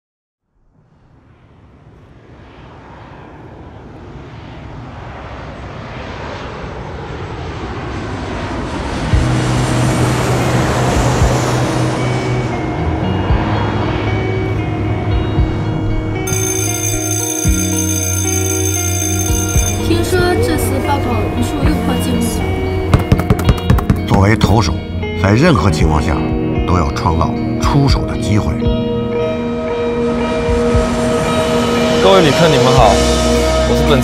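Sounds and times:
jet airliner roar overhead: 0.7 - 23.0, 24.0 - 34.0
high sustained tones: 16.3 - 22.6
music with sustained bass notes: 19.6 - 23.0.

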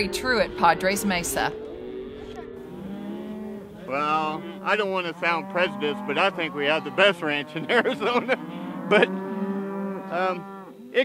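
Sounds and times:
cattle mooing: 0.0 - 11.0.

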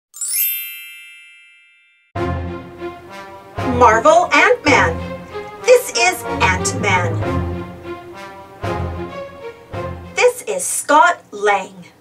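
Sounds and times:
sparkling bell-like chime: 0.2 - 2.2.

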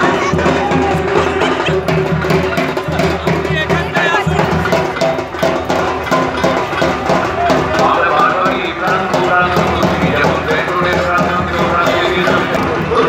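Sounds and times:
parade music with drums: 0.0 - 13.0
voices: 0.0 - 13.0.

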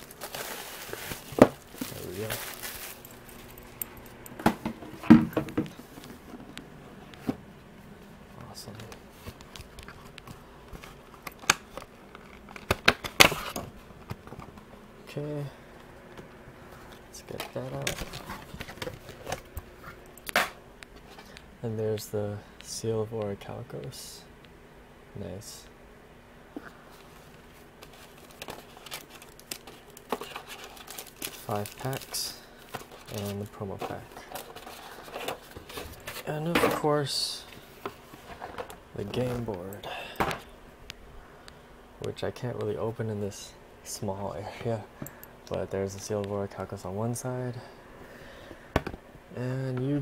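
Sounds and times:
packaging rustling: 0.0 - 6.3, 17.2 - 19.6, 27.0 - 36.3.

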